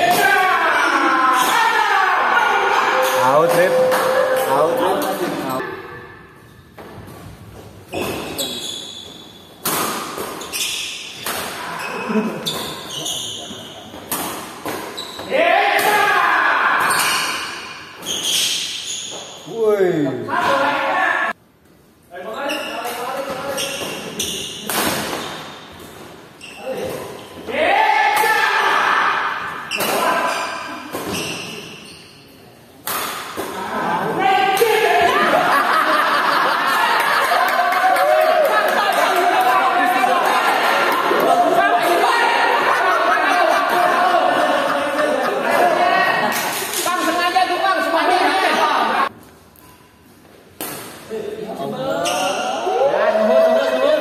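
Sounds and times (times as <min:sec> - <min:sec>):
players shouting: 0:00.0 - 0:05.8, 0:33.6 - 0:46.3.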